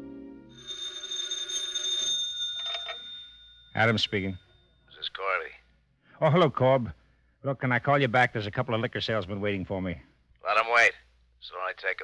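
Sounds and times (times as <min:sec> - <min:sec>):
telephone bell ringing: 0:00.5 - 0:04.4.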